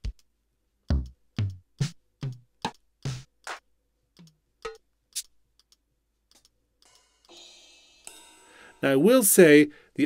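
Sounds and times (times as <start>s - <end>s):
ringing drum sounds: 6.8s - 9.4s.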